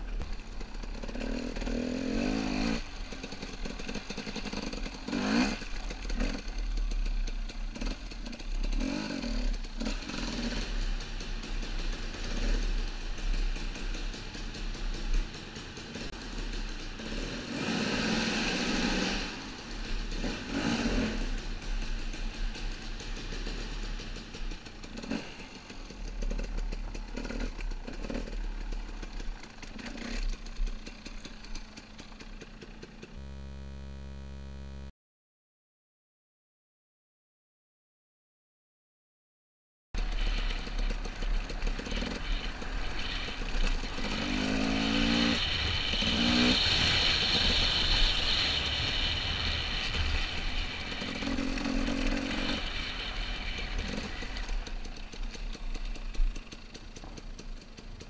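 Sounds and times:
motorcycle engine revving: 0.0 - 34.9, 40.0 - 58.0.

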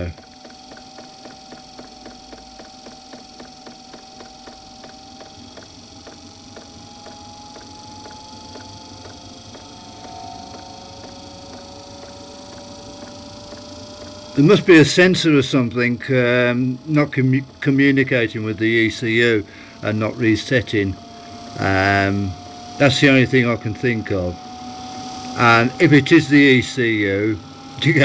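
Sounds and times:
fuel pump ticking: 0.0 - 14.4
heater whine rising in pitch: 0.0 - 28.0.

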